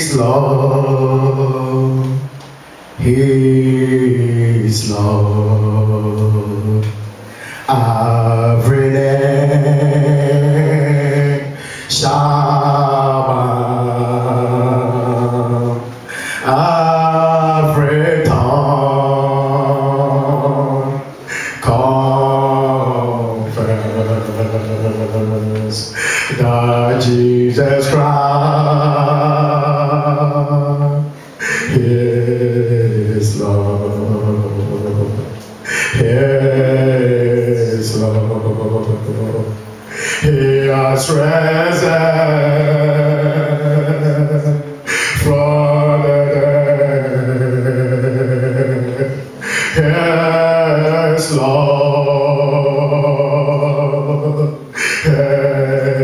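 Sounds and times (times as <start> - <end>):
man singing gospel song: 0.0 - 56.0.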